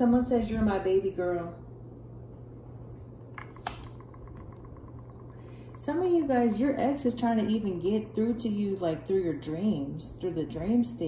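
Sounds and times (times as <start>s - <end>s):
card clicks on glass: 3.4s - 4.0s.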